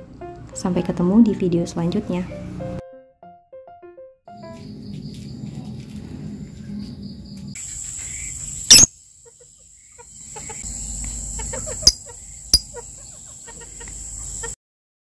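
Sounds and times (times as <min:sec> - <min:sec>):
bird calls: 0:06.7 - 0:14.6
high-pitched insect drone: 0:07.6 - 0:14.5.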